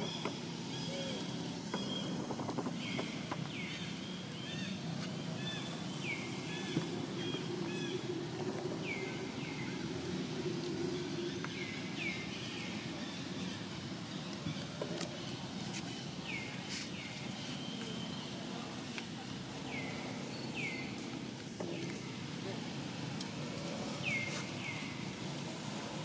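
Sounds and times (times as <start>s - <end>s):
birds chirping: 0.0s - 26.0s.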